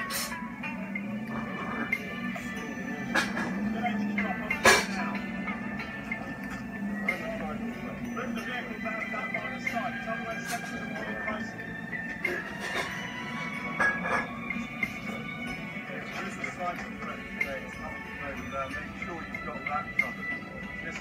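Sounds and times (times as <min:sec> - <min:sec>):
film music: 0:00.0 - 0:21.0
men's voices: 0:01.2 - 0:12.9.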